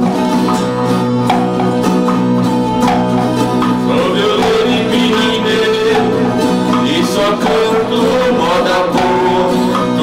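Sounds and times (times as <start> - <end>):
acoustic guitar: 0.0 - 10.0
viola strumming: 0.0 - 10.0
two men singing together: 3.8 - 10.0.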